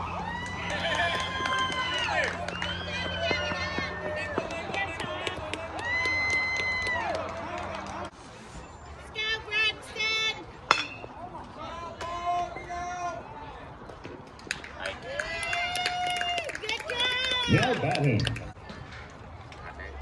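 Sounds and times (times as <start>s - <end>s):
bat hitting a ball: 10.7s - 11.1s.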